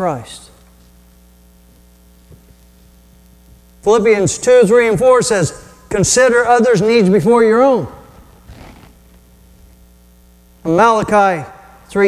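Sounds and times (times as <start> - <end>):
electrical mains hum: 0.0 - 12.0
man's voice: 3.8 - 8.1, 10.7 - 12.0.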